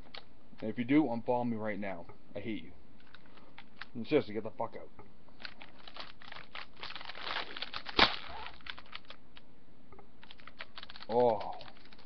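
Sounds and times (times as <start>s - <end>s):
wrapper crinkling: 3.0s - 4.0s, 5.4s - 9.4s, 10.2s - 12.0s
wrapper snapping: 3.0s - 4.0s, 5.4s - 9.4s, 10.2s - 12.0s.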